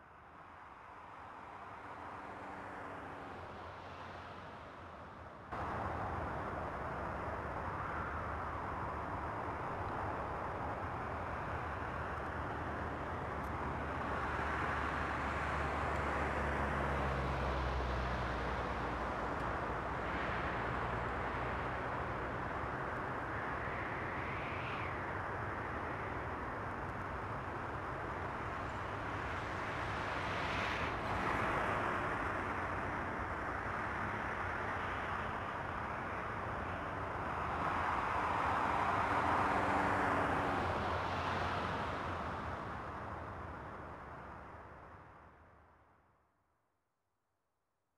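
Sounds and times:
road traffic rumble: 0.0s - 45.8s
vehicles passing: 7.7s - 45.4s.

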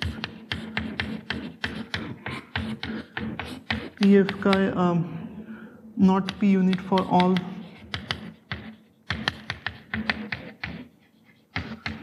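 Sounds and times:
chalk tapping on blackboard: 0.0s - 4.8s, 6.2s - 12.0s.

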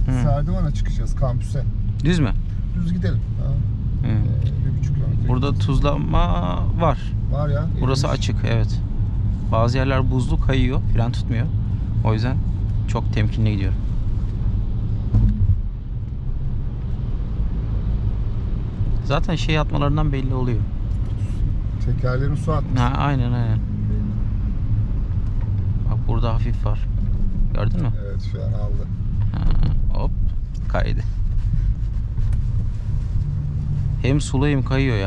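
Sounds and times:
car engine and tyres rumbling: 0.0s - 35.0s.

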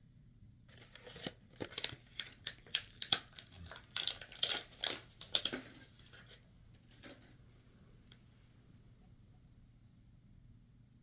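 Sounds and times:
crinkly packaging rustling: 0.7s - 7.4s.

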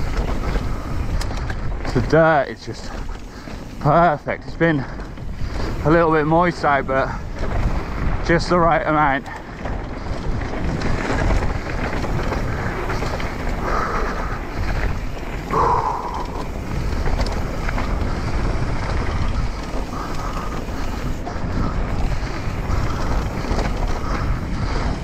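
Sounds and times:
bike tyres rolling on dirt trail: 0.0s - 25.0s
wind rushing over microphone: 0.0s - 25.0s.

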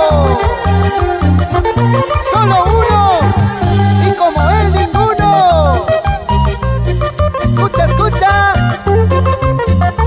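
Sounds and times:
bouncing bass line: 0.0s - 10.0s
sliding lead melody: 0.0s - 10.0s.

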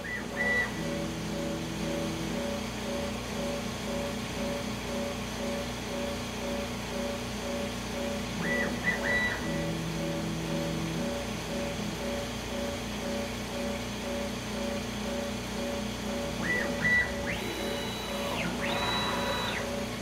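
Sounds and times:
motors whining: 0.0s - 3.2s, 8.3s - 10.3s, 15.7s - 20.0s
regular pulsing tone: 0.0s - 20.0s
steady hum: 0.0s - 20.0s.

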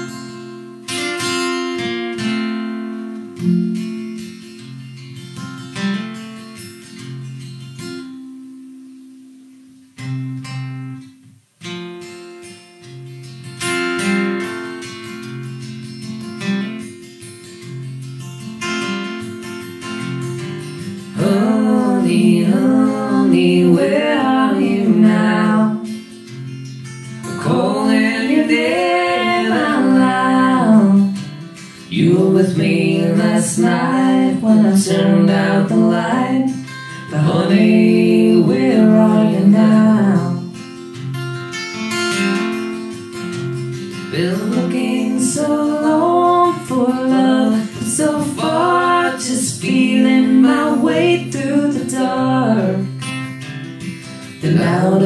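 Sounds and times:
acoustic guitar playing: 0.0s - 55.0s
man and woman singing: 20.8s - 26.2s, 27.2s - 40.6s, 43.9s - 53.2s, 54.2s - 55.0s.

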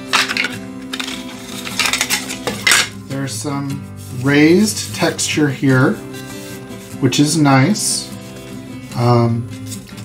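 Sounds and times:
plastic parts clicking and rubbing: 0.1s - 2.9s
plastic parts scraping: 0.1s - 2.9s.

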